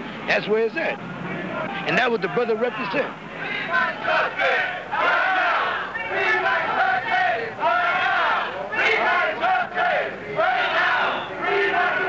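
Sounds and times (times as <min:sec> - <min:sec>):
crowd chanting: 0:01.1 - 0:12.0.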